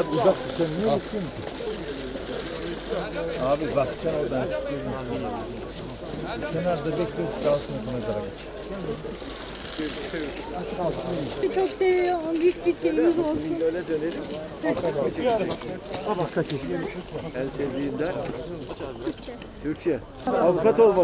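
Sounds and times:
crowd talking: 0.0s - 21.0s.

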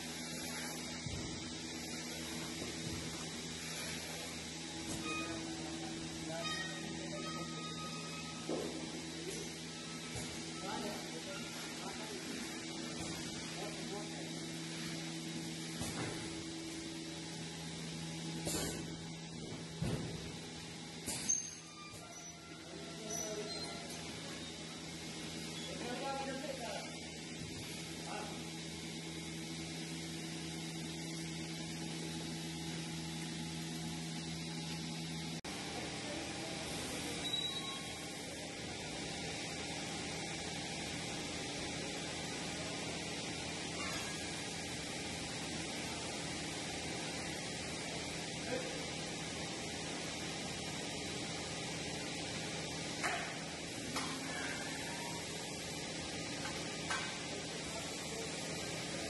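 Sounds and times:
milking machinery hum and hiss: 0.0s - 59.0s.

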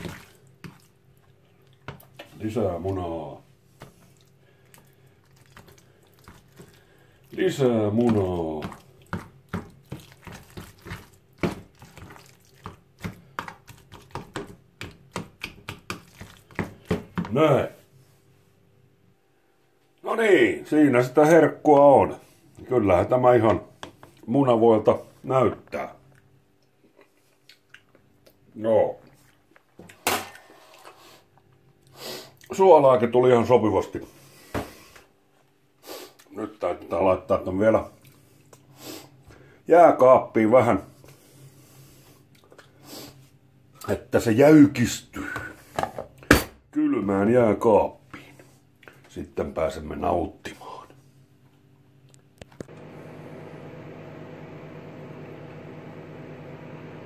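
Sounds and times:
fork mashing in plastic container: 4.7s - 6.8s, 7.4s - 17.4s.

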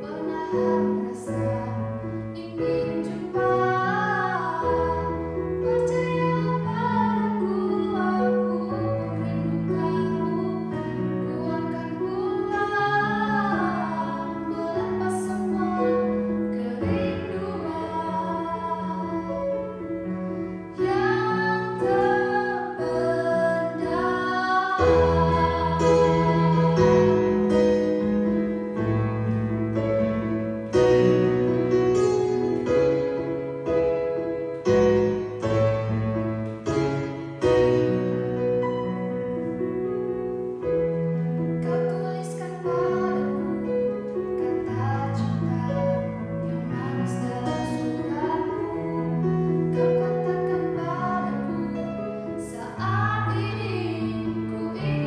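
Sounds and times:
woman singing pop ballad: 0.0s - 19.6s, 20.7s - 27.4s, 44.4s - 55.0s
electronic keyboard piano chords: 0.0s - 55.0s.

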